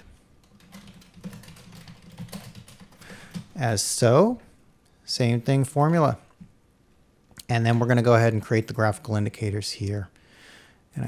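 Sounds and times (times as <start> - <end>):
typing on keyboard: 0.4 - 3.6.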